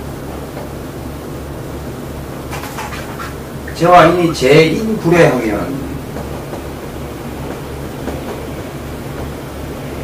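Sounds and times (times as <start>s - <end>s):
even hiss: 0.0s - 10.0s
low electrical hum: 0.0s - 10.0s
marker writing on whiteboard: 2.5s - 3.4s.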